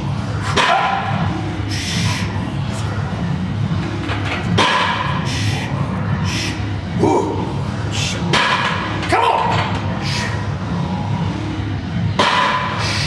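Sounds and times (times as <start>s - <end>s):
sharp forceful breaths: 1.6s - 2.4s, 5.1s - 6.7s.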